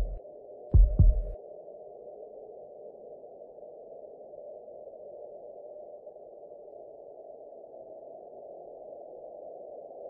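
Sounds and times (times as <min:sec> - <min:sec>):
heartbeat-like low double thumps: 0:00.0 - 0:00.2, 0:00.8 - 0:01.4
steady low drone: 0:00.0 - 0:00.2.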